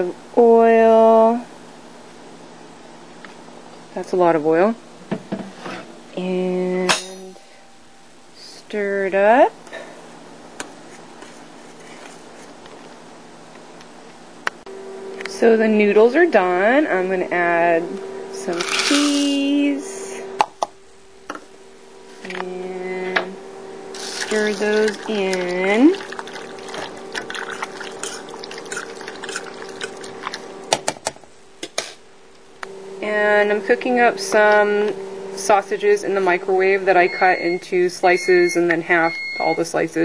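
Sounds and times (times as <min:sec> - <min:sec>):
steady hum: 0:00.0 - 0:40.0
pot of noodles boiling: 0:24.0 - 0:30.7.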